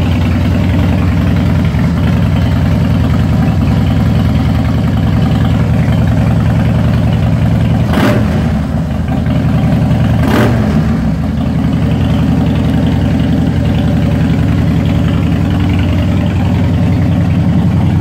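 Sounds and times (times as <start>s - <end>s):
motorcycle engine idling: 0.0s - 18.0s.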